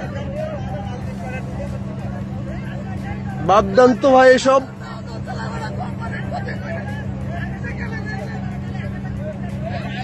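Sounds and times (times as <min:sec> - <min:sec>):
boat engine droning: 0:00.0 - 0:10.0
crowd chatter: 0:00.0 - 0:10.0.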